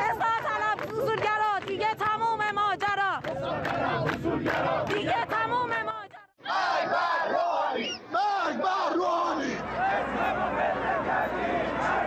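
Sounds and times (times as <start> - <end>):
crowd shouting slogans: 3.3 - 5.6, 6.4 - 12.0.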